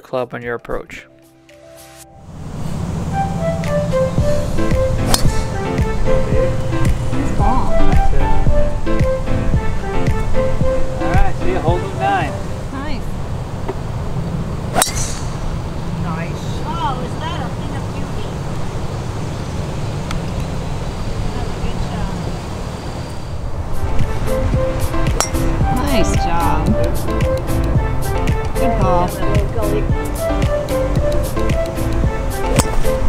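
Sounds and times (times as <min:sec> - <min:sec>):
background music: 0:00.0 - 0:13.1, 0:23.7 - 0:33.0
golf club striking ball: 0:04.6 - 0:07.1, 0:14.7 - 0:15.6, 0:24.8 - 0:27.6, 0:32.5 - 0:32.9
wind rumble on microphone: 0:12.4 - 0:27.9.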